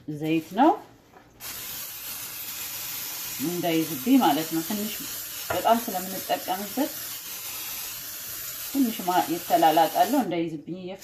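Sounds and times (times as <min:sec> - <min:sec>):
aerosol spray hissing: 0:01.4 - 0:10.3.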